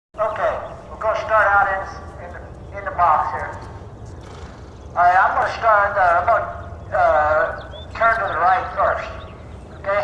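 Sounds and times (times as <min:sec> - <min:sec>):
man talking: 0:00.2 - 0:03.7, 0:05.0 - 0:09.2, 0:09.8 - 0:10.0
steady low rumble: 0:00.2 - 0:10.0.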